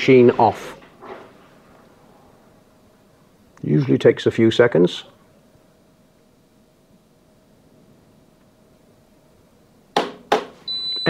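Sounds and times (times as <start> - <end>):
high-pitched beep: 10.7 - 11.0.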